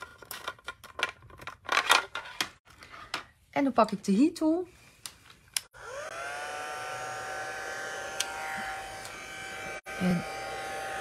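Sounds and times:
heat tool fan motor humming: 5.8s - 11.0s.

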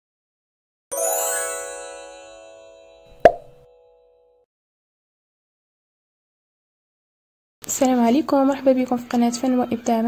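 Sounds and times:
bright many-toned chime: 0.9s - 4.4s
sharp pop: 3.1s - 3.6s.

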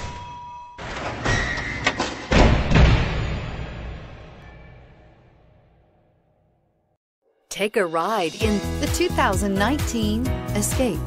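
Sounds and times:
deep cinematic thuds and impacts: 2.3s - 4.6s.

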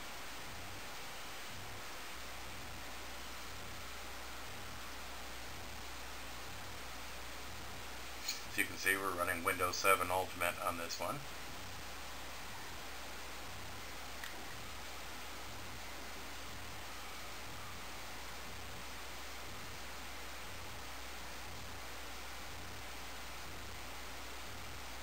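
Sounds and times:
computer fans whirring: 0.0s - 25.0s
faint click: 14.2s - 14.4s.

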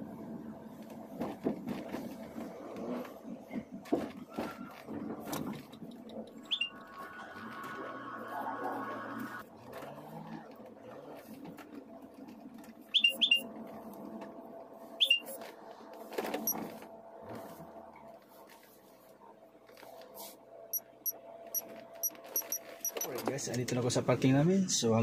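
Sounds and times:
car tyres squeaking: 3.6s - 13.7s, 15.0s - 15.6s, 20.8s - 23.2s.

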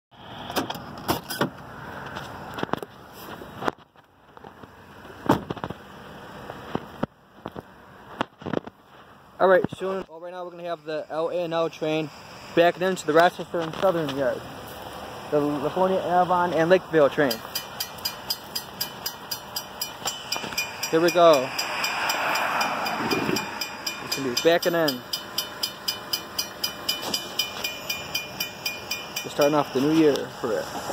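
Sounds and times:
rushing outdoor noise: 0.1s - 30.9s
high-pitched clicking: 17.3s - 30.2s.

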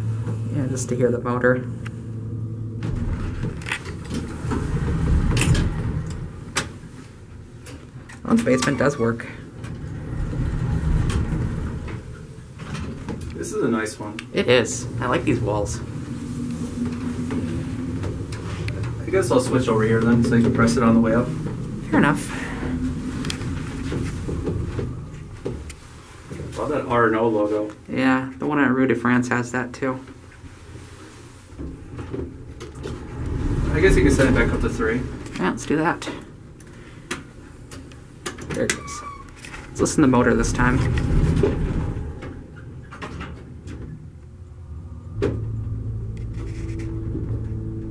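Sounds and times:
elevator low rumble: 0.0s - 47.9s.

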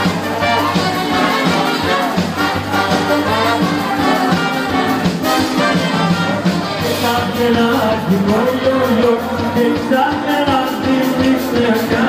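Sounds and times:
live band music: 0.0s - 12.0s
trombone and trumpet melody: 0.0s - 12.0s.

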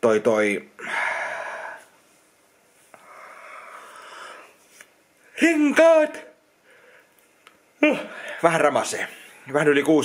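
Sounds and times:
man breathing heavily: 0.8s - 2.0s, 2.9s - 4.6s, 7.9s - 8.4s
man yawning: 7.8s - 8.3s.

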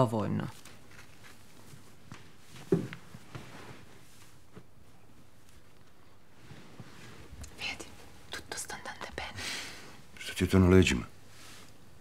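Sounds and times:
person whispering: 7.5s - 9.4s.

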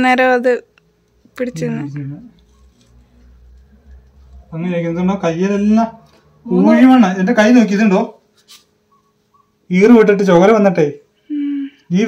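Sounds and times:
person speaking: 1.3s - 2.5s.

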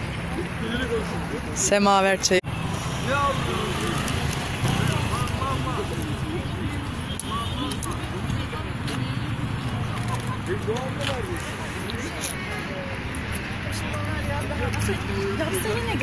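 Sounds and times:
background chatter of voices: 0.0s - 16.0s
low rumble of road traffic: 0.0s - 16.0s.

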